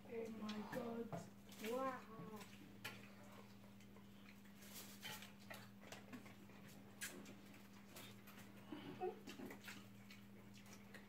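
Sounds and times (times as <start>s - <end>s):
clicks and taps of eating: 0.2s - 11.0s.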